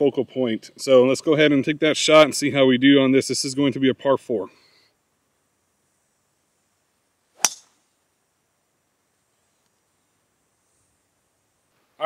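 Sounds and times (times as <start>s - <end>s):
golf driver striking ball: 7.4s - 7.8s.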